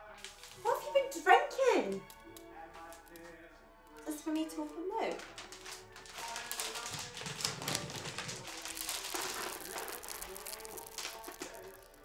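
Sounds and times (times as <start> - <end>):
paper and cardboard crackling: 0.0 - 1.1, 1.8 - 12.0.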